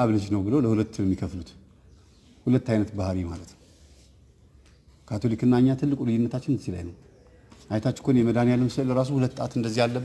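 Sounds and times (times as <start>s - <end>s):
man speaking: 0.0s - 1.6s, 2.4s - 3.6s, 5.0s - 10.0s.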